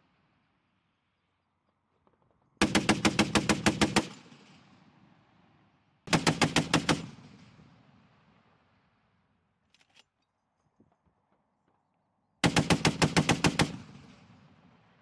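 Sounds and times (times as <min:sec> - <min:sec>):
rolling echo: 0:04.0 - 0:06.0, 0:07.0 - 0:09.2, 0:13.4 - 0:15.0.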